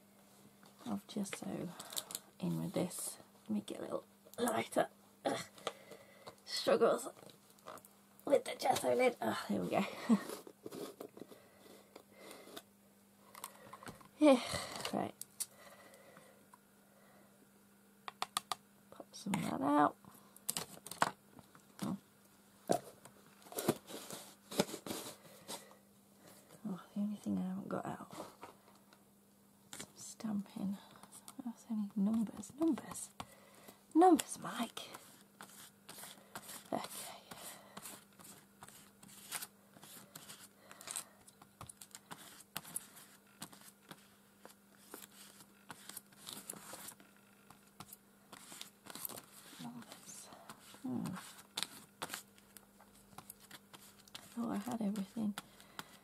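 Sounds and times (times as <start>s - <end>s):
brush scraping on paper: 23.6s - 25.2s, 34.9s - 40.5s, 42.1s - 47.0s, 47.8s - 52.2s, 53.7s - 55.2s.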